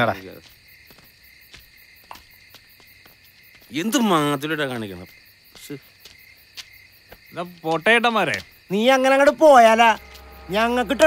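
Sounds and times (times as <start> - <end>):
crickets chirping: 0.0 - 11.0
man's voice: 8.7 - 11.0.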